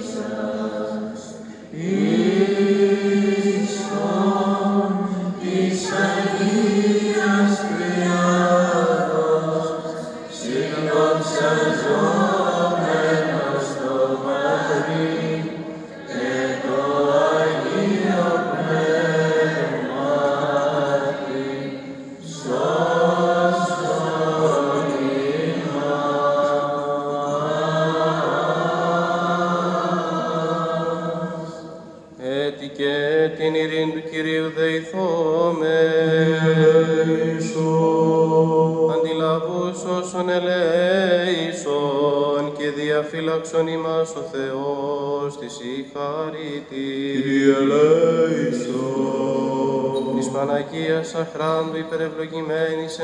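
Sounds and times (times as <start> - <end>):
men chanting: 0.0 - 33.6, 45.4 - 52.0.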